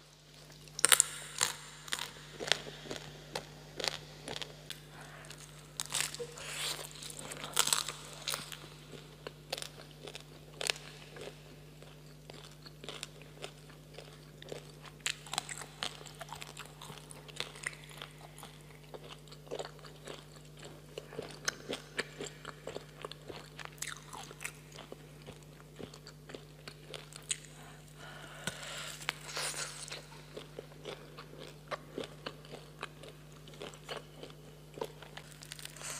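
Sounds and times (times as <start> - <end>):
steady low hum: 0.0 - 35.9
biting and chewing meat: 0.6 - 35.9.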